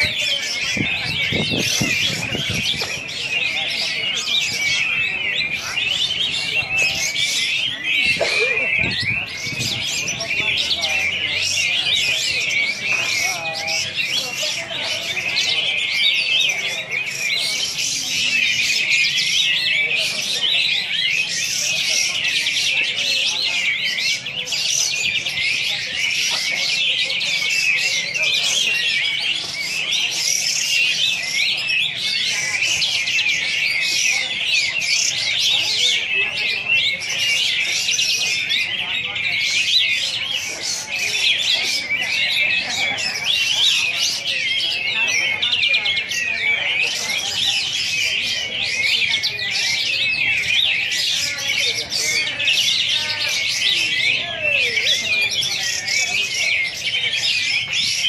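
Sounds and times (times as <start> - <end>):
bird singing fast chirps and trills: 0.0 - 58.0.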